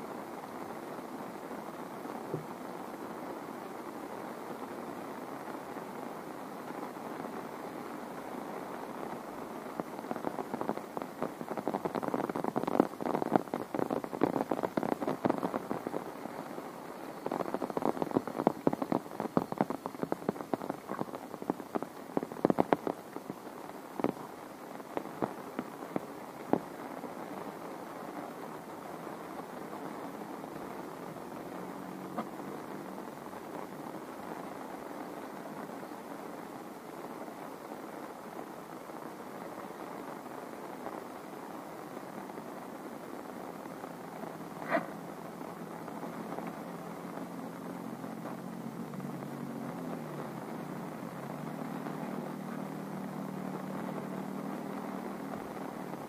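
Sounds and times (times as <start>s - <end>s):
heavy rain: 0.0s - 56.0s.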